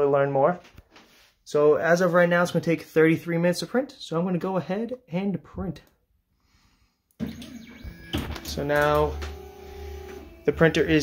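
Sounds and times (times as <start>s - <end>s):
printer low hum with hiss: 7.4s - 11.0s.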